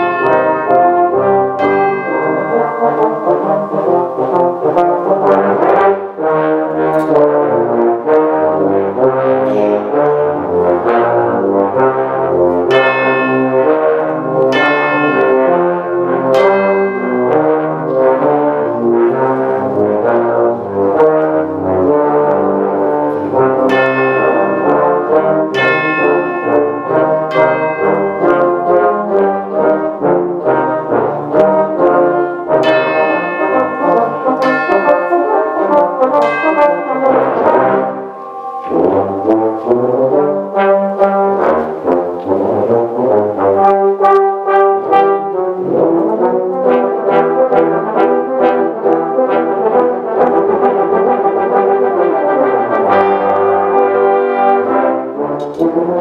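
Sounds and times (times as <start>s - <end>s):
tuba and euphonium ensemble: 0.0s - 56.0s.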